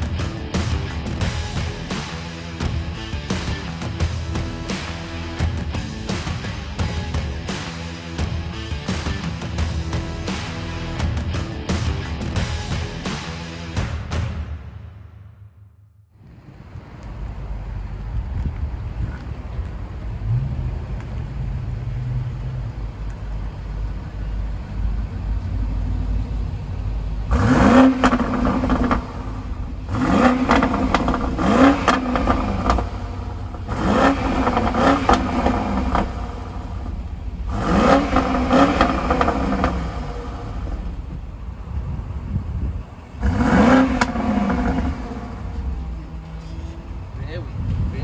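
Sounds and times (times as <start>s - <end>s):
car exhaust idling: 16.2s - 47.1s
engine revving: 20.1s - 41.3s, 43.1s - 47.2s.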